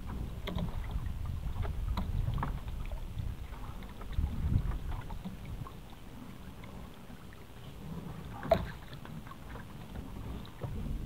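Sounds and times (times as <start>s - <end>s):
low rumble of wind and water: 0.0s - 11.0s.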